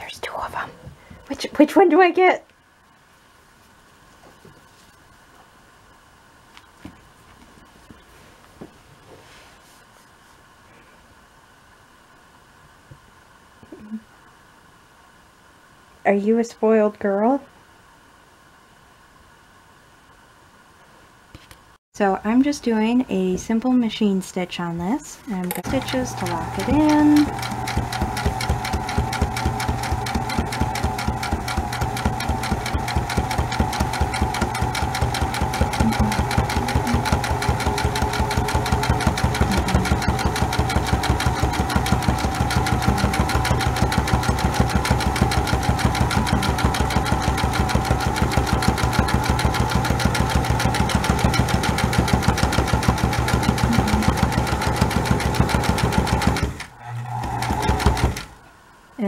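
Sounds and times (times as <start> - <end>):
sewing machine stitching: 25.6 - 58.4.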